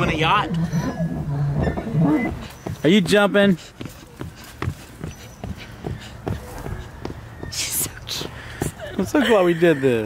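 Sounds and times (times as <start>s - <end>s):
feet thumping on rubber mat: 2.4s - 8.8s.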